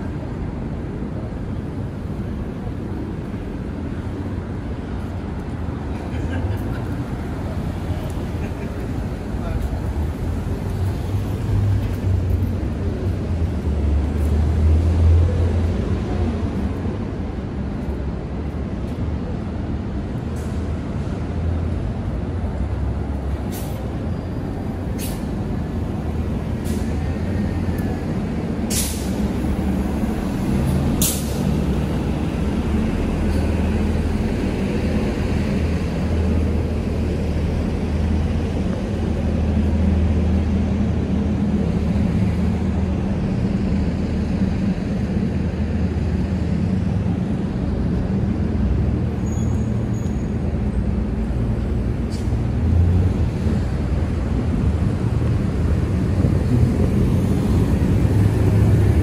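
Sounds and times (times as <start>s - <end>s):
bus and car engines running: 0.0s - 59.0s
air brake hisses: 23.5s - 23.9s, 25.0s - 25.3s, 28.7s - 29.2s, 31.0s - 31.4s.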